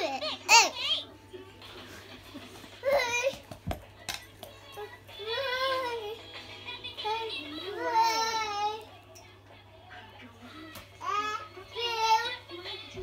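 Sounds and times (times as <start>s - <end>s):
toddler singing and babbling: 4.6s - 6.3s, 6.9s - 8.9s, 10.6s - 13.0s.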